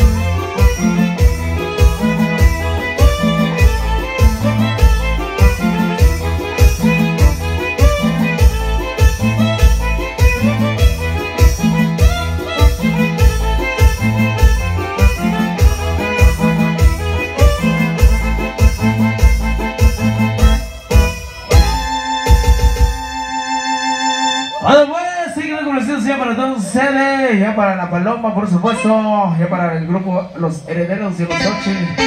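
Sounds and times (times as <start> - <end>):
repeating bass beat: 0.0 - 23.3
violin-like keyboard melody: 0.0 - 24.8, 28.6 - 29.4, 31.2 - 32.0.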